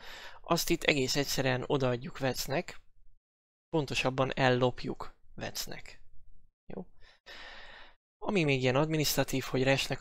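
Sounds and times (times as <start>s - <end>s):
man breathing in: 0.0s - 0.4s, 7.0s - 8.0s.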